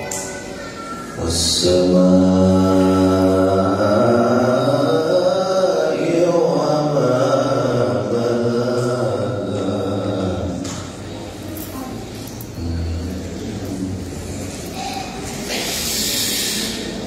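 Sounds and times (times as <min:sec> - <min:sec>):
man reciting melodically: 0:01.2 - 0:10.8.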